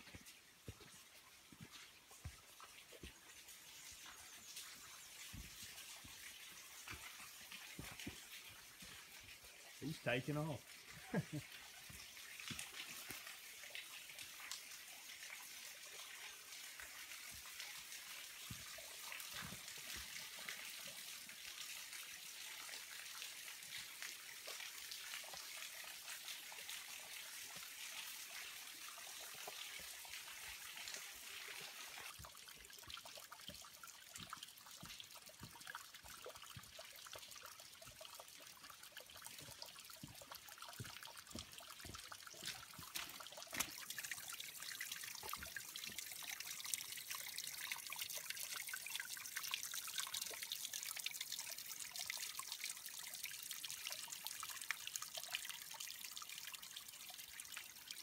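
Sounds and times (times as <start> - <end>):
water trickling and dripping on rock: 0.0 - 58.0.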